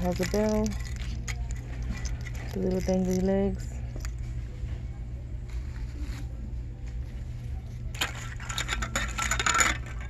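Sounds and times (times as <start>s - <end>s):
metal ornaments clinking: 0.0s - 4.2s, 7.9s - 10.0s.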